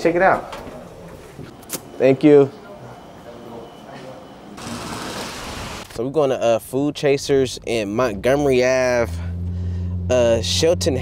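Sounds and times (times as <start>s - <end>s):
road noise: 8.0s - 11.0s.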